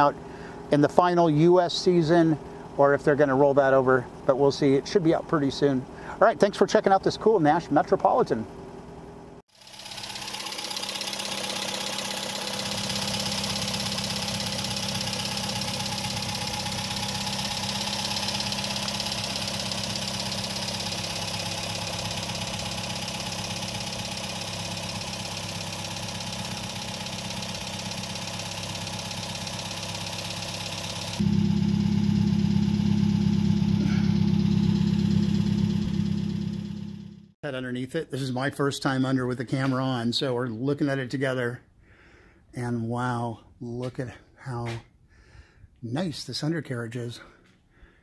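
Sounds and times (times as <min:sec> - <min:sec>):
car engine idling: 0:00.0 - 0:37.4.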